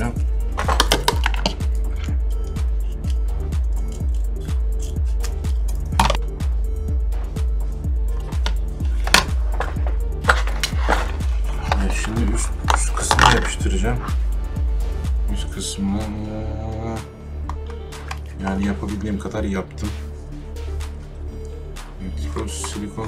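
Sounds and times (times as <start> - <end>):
background music with low beat: 0.0 - 23.0
clicks and rustles of handling: 8.2 - 13.6.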